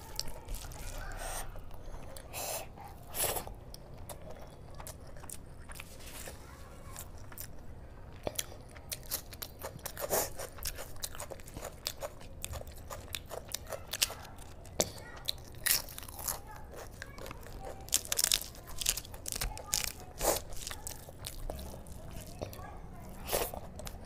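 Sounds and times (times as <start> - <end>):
sharp crunches of crisp food: 0.0 - 1.6, 9.0 - 24.0
chewing: 0.0 - 24.0.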